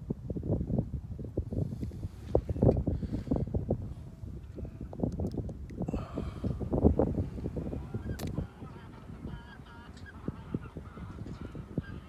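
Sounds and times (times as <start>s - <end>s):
wind buffeting microphone: 0.0s - 12.0s
geese honking: 7.6s - 12.0s.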